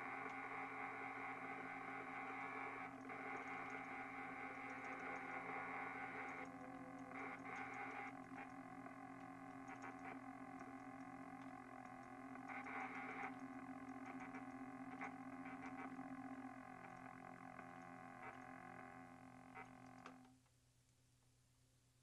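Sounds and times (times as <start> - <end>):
drone of held tones: 0.0 - 20.3
faint clicks: 0.1 - 18.9, 19.5 - 21.0.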